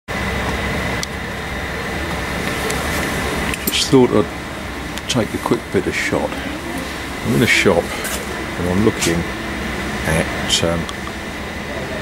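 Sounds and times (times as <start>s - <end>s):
background hum and hiss: 0.1s - 12.0s
thin steady high tone: 1.7s - 12.0s
man talking: 3.7s - 4.4s, 5.0s - 9.4s, 10.0s - 10.9s.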